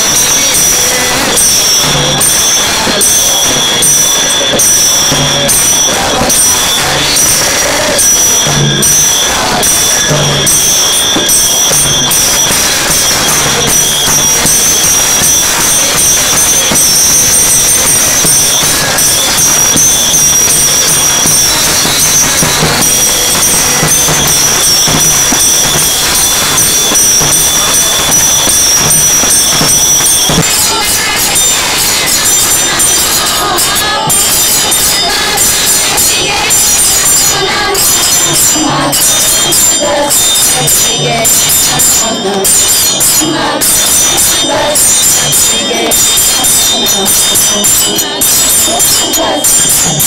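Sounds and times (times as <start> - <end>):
hand drum: 0.0 - 40.1
brass hand cymbals ringing: 0.0 - 50.0
hand clapping: 0.0 - 50.0
women singing together: 0.0 - 50.0.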